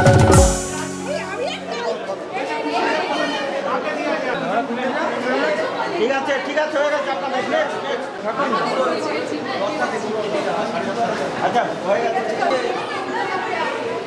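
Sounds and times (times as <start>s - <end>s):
music track: 0.0s - 2.2s
crowd chatter: 0.0s - 14.0s.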